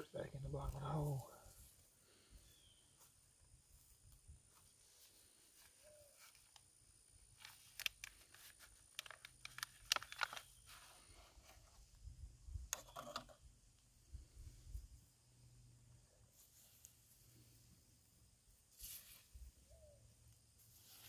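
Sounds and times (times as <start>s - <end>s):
plastic pot crackling when squeezed: 7.4s - 10.8s.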